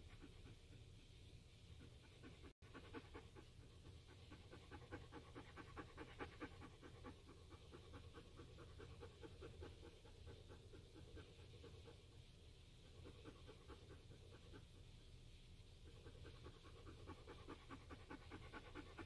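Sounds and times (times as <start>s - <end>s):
dog panting rapidly: 0.0s - 19.0s.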